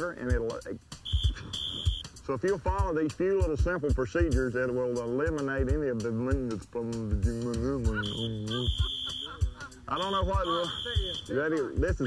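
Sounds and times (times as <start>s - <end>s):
music: 0.0s - 12.0s
high electronic beep: 1.1s - 2.1s, 7.9s - 12.0s.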